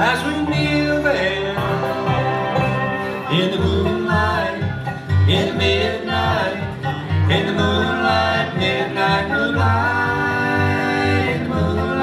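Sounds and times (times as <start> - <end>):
bluegrass band playing: 0.0 - 12.0
plucked bass pulse: 0.0 - 12.0
sliding lead notes: 0.0 - 12.0.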